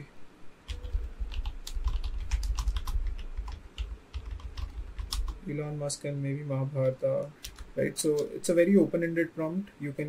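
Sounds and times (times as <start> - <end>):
computer keyboard typing: 0.6 - 5.5, 6.8 - 8.4.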